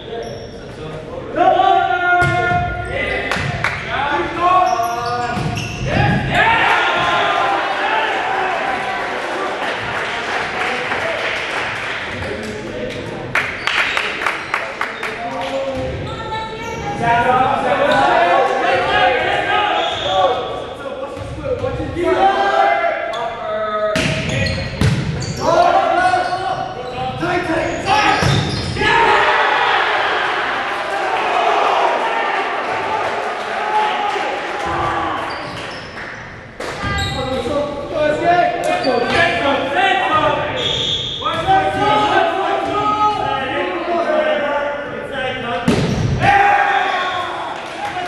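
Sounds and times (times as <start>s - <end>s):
players shouting: 5.6s - 11.0s, 17.3s - 20.6s, 22.0s - 23.1s, 25.3s - 35.6s, 41.2s - 44.4s, 46.0s - 48.0s
volleyball slaps: 24.0s - 25.2s.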